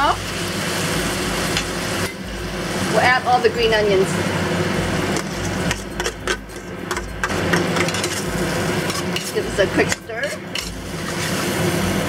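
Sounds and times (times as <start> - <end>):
faint sauce sizzle: 0.0 - 12.0.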